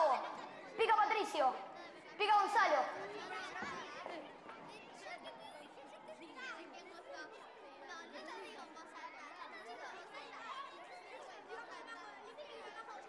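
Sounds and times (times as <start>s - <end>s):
children chattering: 0.0s - 13.0s.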